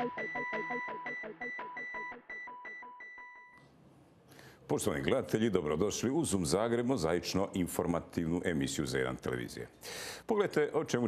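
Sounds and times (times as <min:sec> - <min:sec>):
electronic beeping tones: 0:00.0 - 0:03.6.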